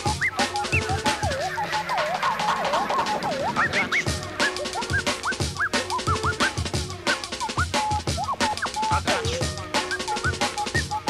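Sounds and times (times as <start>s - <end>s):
drum and bass music: 0.0s - 11.0s
swooping synth line: 0.0s - 11.0s.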